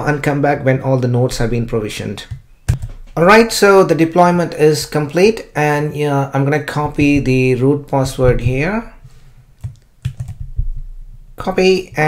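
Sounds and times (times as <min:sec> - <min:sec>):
computer input clicks: 0:09.6 - 0:10.5.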